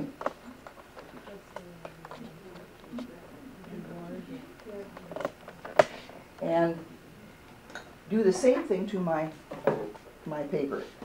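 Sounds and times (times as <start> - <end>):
faint murmured voices: 0.0 - 7.7.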